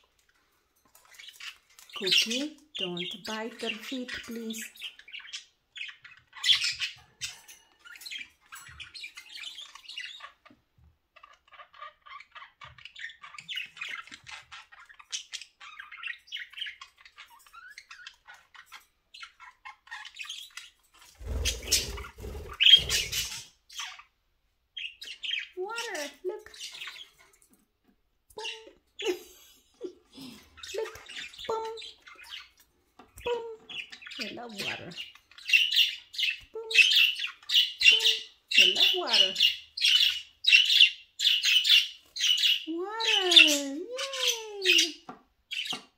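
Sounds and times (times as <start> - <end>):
budgerigars chirping and squawking: 0.0 - 24.2, 24.8 - 27.6, 28.4 - 45.9.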